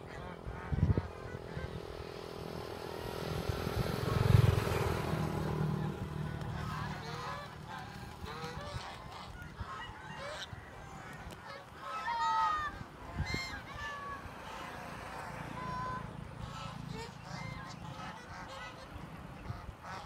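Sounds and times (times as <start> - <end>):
geese honking: 0.0 - 3.2, 3.9 - 20.0
passing engine: 0.0 - 20.0.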